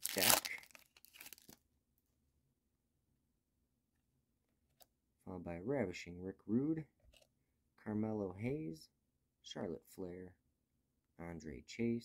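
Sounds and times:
foil wrapper crinkling: 0.0s - 1.6s.

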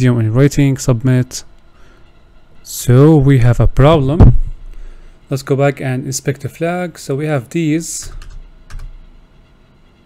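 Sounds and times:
computer keyboard keystrokes: 8.1s - 9.0s.

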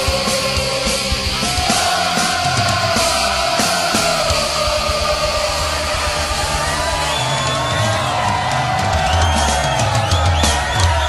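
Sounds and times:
crowd shouting along: 0.0s - 11.0s
punk rock music: 0.0s - 11.0s.

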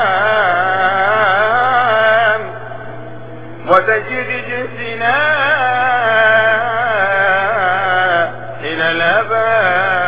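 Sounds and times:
man chanting: 0.0s - 2.8s, 3.6s - 10.0s
steady low hum: 0.0s - 10.0s.

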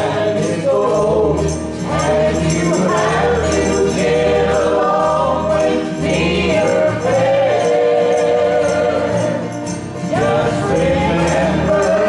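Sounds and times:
group singing a hymn in harmony: 0.0s - 12.0s.

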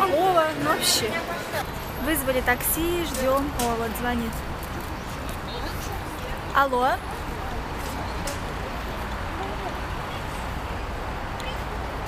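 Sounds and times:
city street traffic noise: 0.0s - 12.0s.

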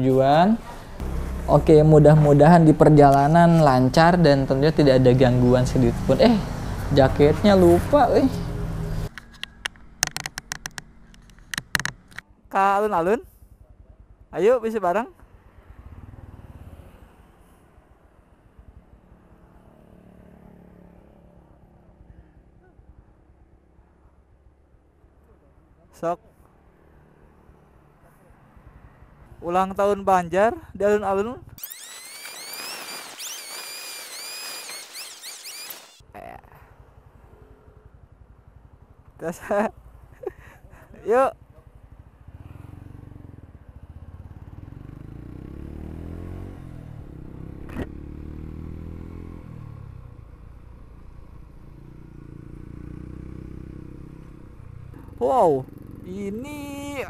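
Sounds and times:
motorcycle engine idling: 7.0s - 16.4s, 21.4s - 26.6s, 36.1s - 45.3s
gear clicking and tapping: 9.1s - 12.2s.

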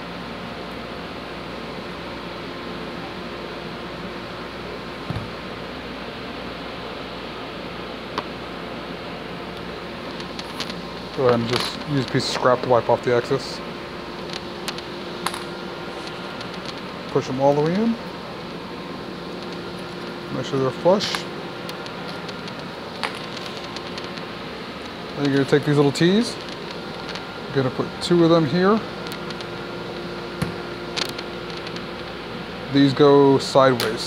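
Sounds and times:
low background hum: 0.0s - 34.0s.

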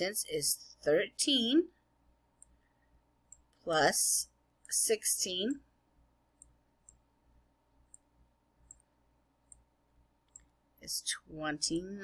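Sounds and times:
computer mouse clicks: 3.3s - 3.7s, 6.4s - 7.0s, 7.8s - 10.6s.

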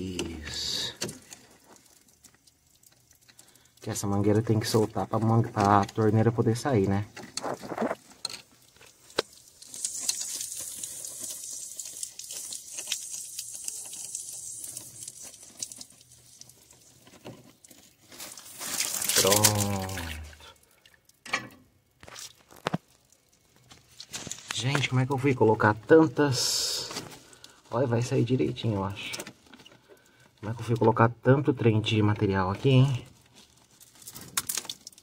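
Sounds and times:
water hissing and spattering: 0.0s - 21.3s, 22.0s - 29.1s.

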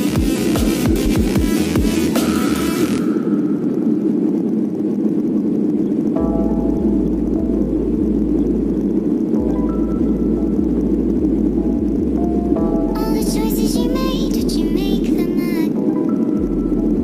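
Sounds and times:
bass line: 0.0s - 3.1s, 6.2s - 15.6s, 16.4s - 17.0s
low synth drone: 0.0s - 17.0s.

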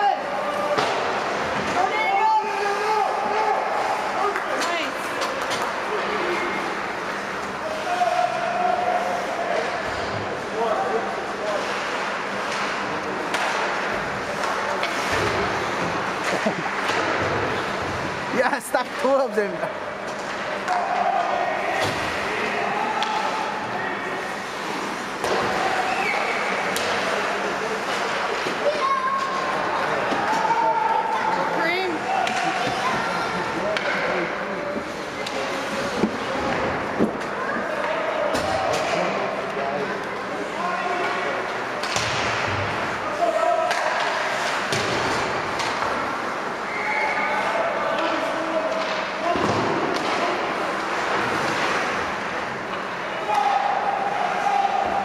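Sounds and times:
spectators talking: 0.0s - 55.0s
puck and sticks hitting boards: 0.5s - 1.9s, 11.6s - 18.1s, 20.0s - 23.6s, 24.4s - 30.6s, 32.1s - 33.0s, 33.6s - 39.2s, 41.0s - 46.3s, 48.0s - 52.1s.

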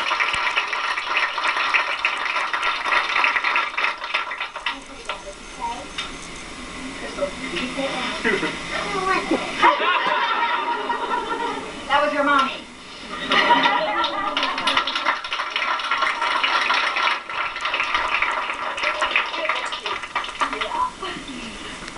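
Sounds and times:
audience clapping and cheering: 0.0s - 5.3s, 13.3s - 21.0s.

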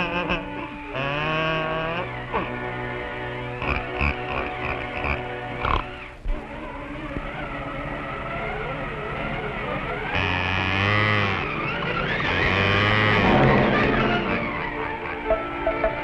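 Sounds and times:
cartoon music with sliding notes: 13.1s - 16.0s.

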